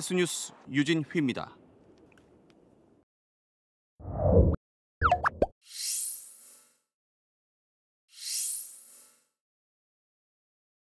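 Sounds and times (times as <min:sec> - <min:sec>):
bubbly popping glides: 0:05.0 - 0:05.5.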